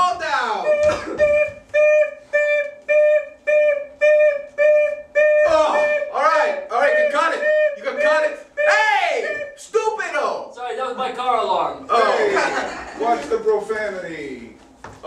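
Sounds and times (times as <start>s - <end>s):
man imitating beeps: 0.6s - 9.7s
man making wordless vocal noises: 5.2s - 9.7s.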